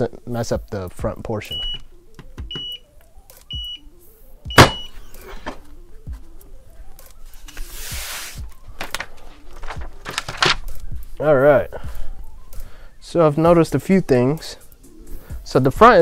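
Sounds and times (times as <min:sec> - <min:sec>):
heat press timer beeping: 0:01.5 - 0:01.8, 0:02.5 - 0:02.9, 0:04.5 - 0:05.0
press popping open with clunk: 0:04.5 - 0:04.9
plastic sheet peeling hiss: 0:07.4 - 0:08.5.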